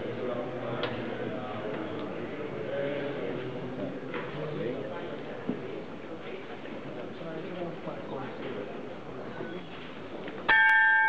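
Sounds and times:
crowd murmur: 0.0s - 10.5s
small bell ringing: 10.5s - 11.0s.

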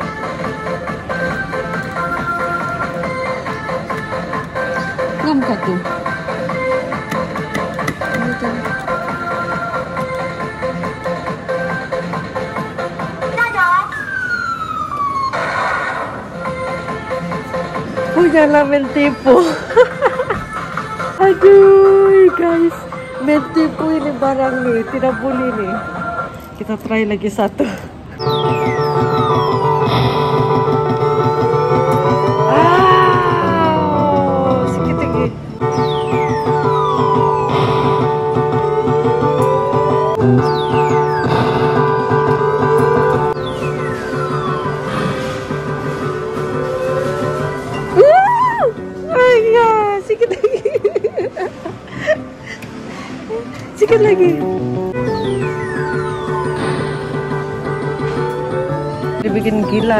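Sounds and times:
arcade music: 0.0s - 15.5s, 28.0s - 48.1s, 53.2s - 59.9s.

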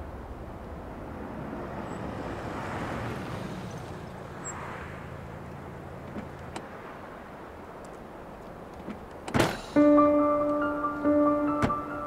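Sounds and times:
car engine and tyre noise: 0.0s - 12.0s.

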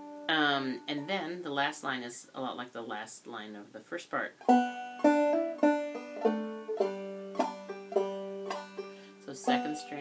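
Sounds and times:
banjo melody: 0.0s - 1.5s, 4.2s - 10.0s.

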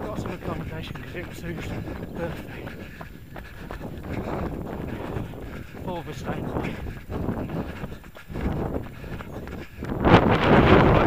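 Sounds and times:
runners' footfalls on path: 0.0s - 11.0s
wind buffeting microphone: 0.0s - 11.0s.

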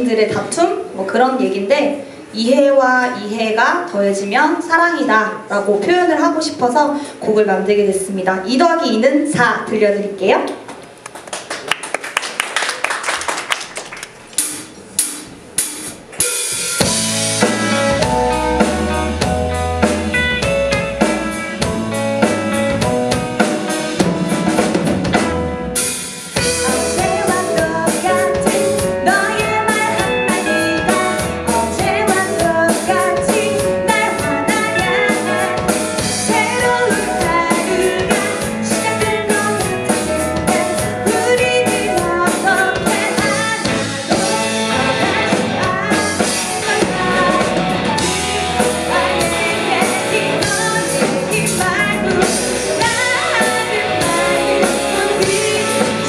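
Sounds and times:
rock band playing: 14.4s - 56.0s.

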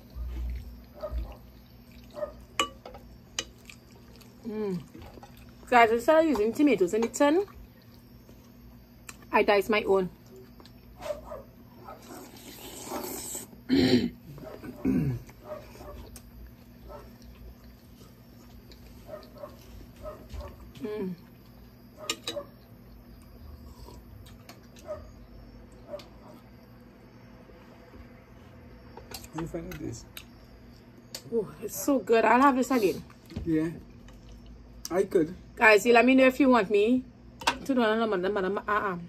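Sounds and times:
wet chewing and slurping: 0.0s - 2.6s, 3.4s - 5.7s, 11.9s - 13.6s, 14.7s - 20.0s, 23.2s - 24.9s, 34.1s - 34.6s.

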